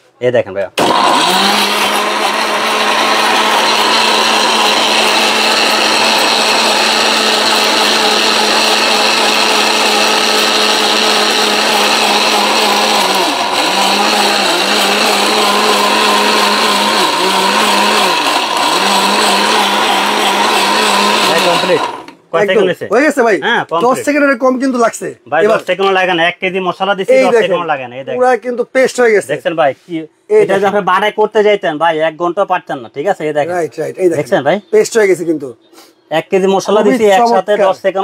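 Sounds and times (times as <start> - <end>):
mixer grinder motor running: 0.8 - 22.2.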